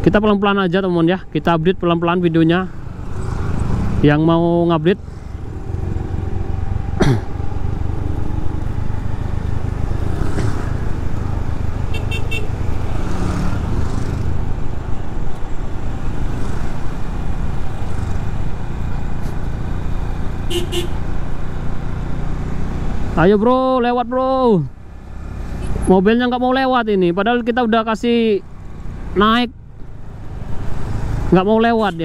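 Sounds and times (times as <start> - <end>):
road and wind noise: 0.0 - 32.0
short horn toots: 20.5 - 21.0.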